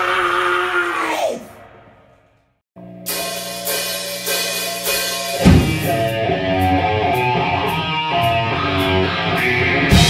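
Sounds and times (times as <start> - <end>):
man shouting: 0.0 - 1.6.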